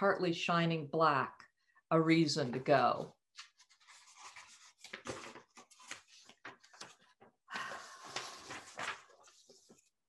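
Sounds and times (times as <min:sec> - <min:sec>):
paper rustling: 0:03.3 - 0:10.0.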